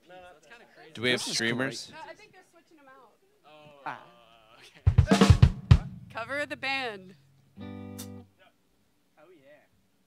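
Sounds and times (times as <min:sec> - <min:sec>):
single guitar note: 0:07.6 - 0:08.3.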